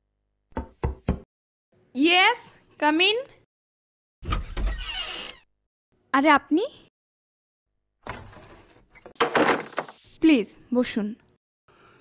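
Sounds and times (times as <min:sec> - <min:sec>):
knocks on a door: 0:00.6 - 0:01.3.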